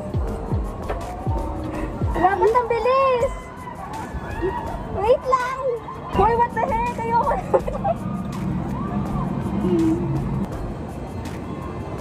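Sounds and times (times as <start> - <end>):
background music: 0.0 - 12.0
excited voices and exclamations: 2.2 - 8.1.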